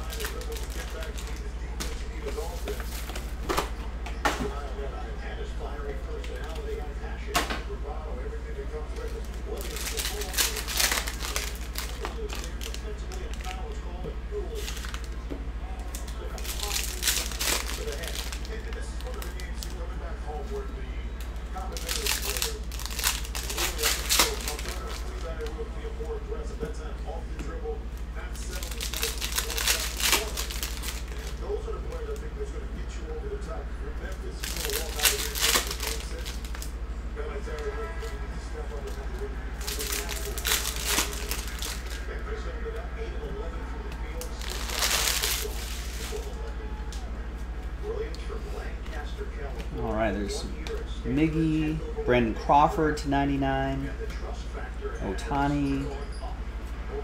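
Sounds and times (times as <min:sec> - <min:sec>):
foil wrappers crinkling and tearing: 0:00.0 - 0:03.4, 0:06.1 - 0:06.9, 0:08.7 - 0:15.2, 0:15.8 - 0:26.2, 0:27.6 - 0:32.6, 0:33.4 - 0:36.8, 0:37.4 - 0:42.8, 0:43.4 - 0:47.0.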